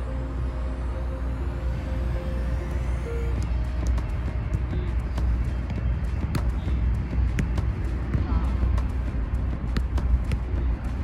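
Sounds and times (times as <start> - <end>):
soft background music: 0.0 - 11.0
steady low rumble: 0.0 - 11.0.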